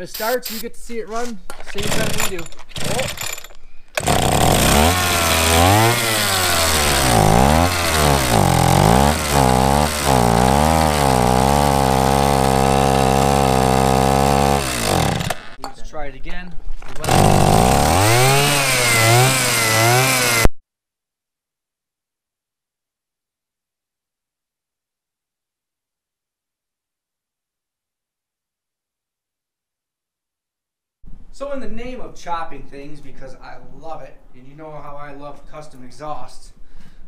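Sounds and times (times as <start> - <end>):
scooter engine revving and sputtering: 4.0 - 15.6, 17.0 - 20.5.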